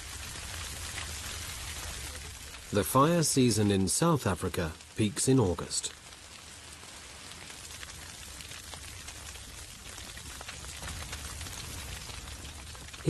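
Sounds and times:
fire crackling: 0:00.0 - 0:13.0.

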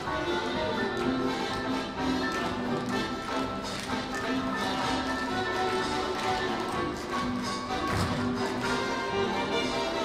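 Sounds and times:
live stage music held notes: 0:00.0 - 0:10.0.

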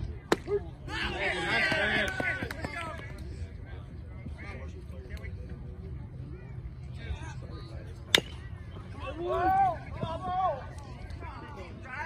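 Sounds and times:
faint crowd chatter: 0:00.0 - 0:12.0.

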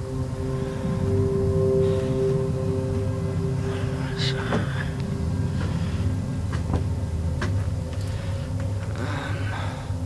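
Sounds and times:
held tones over low drone: 0:00.0 - 0:10.0.

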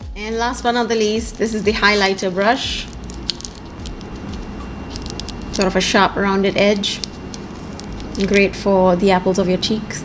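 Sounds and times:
low steady hum: 0:00.0 - 0:10.0
makeup brushes clicking: 0:01.2 - 0:02.1, 0:02.7 - 0:05.8, 0:06.7 - 0:08.5
plastic sleeves crinkling: 0:01.3 - 0:08.6.

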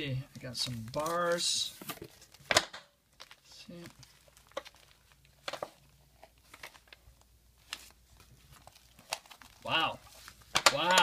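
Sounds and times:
plastic packaging crinkling: 0:00.4 - 0:11.0.

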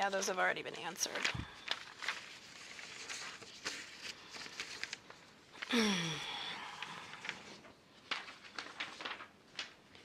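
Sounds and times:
papers rustling: 0:01.0 - 0:05.7, 0:06.7 - 0:10.0.

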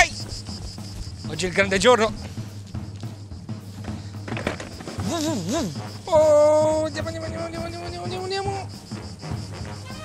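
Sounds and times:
background music with drum beat: 0:00.0 - 0:10.0.

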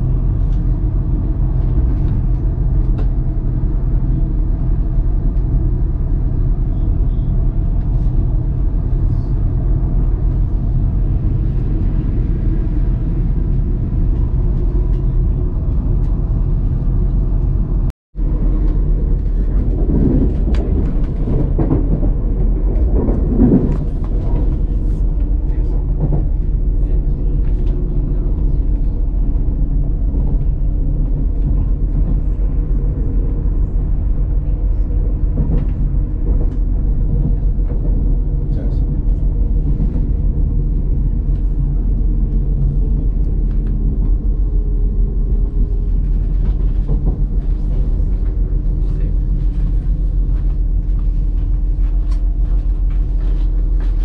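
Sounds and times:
train rumble and hum: 0:00.0 - 0:54.0.

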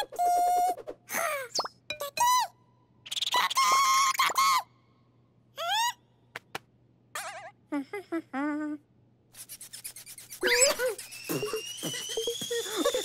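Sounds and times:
squeaky cartoon voices: 0:09.7 - 0:12.2.

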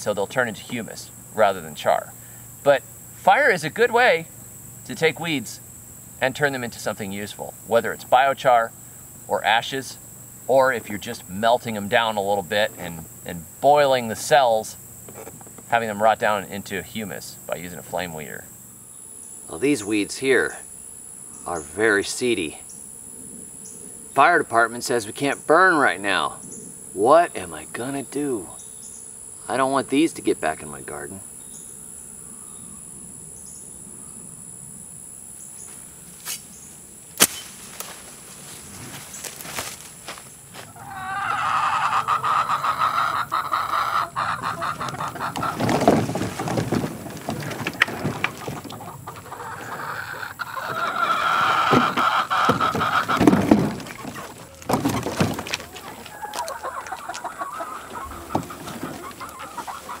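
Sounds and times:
high insect drone: 0:00.0 - 1:00.0
chickens clucking: 0:40.6 - 1:00.0.

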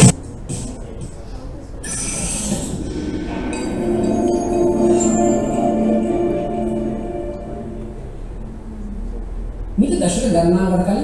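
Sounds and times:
ringing chime tones: 0:02.7 - 0:08.6.

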